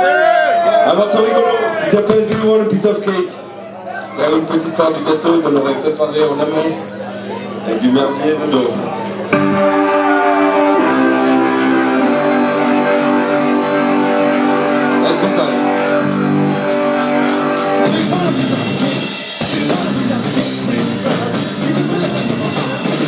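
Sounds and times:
electric keyboard chords: 0:02.7 - 0:23.0
drum kit: 0:14.2 - 0:23.0.

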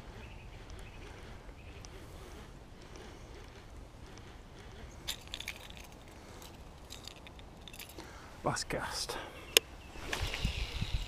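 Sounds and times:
fishing reel crackling clicks: 0:10.1 - 0:11.0.

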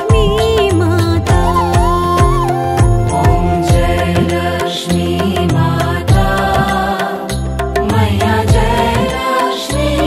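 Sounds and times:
devotional melody: 0:00.0 - 0:10.0
drum strokes: 0:01.3 - 0:04.6.

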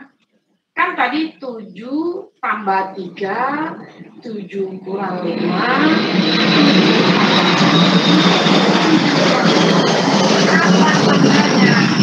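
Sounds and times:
low hum: 0:01.8 - 0:12.0
loud steady rushing noise: 0:04.8 - 0:12.0.

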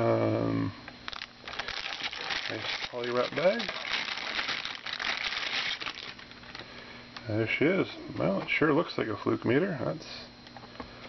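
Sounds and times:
plastic bag crinkling: 0:01.1 - 0:06.6.

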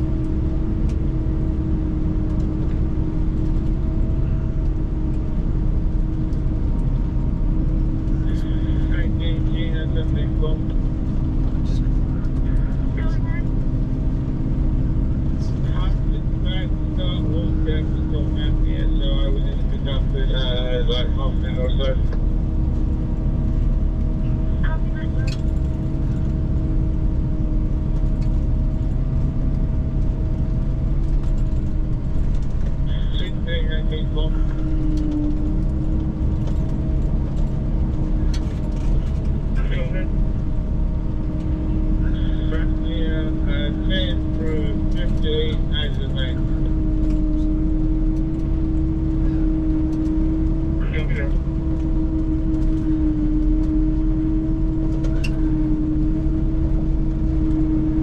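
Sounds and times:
engine droning: 0:00.0 - 0:58.0
faint voices: 0:11.6 - 0:13.5, 0:15.4 - 0:22.2, 0:32.9 - 0:35.2, 0:39.6 - 0:40.1, 0:42.0 - 0:46.6, 0:50.8 - 0:51.4.

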